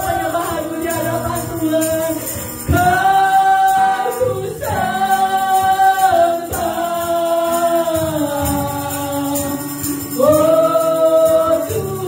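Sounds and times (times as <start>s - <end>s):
strummed acoustic guitar: 0.0s - 12.0s
woman singing worship song: 0.0s - 12.0s.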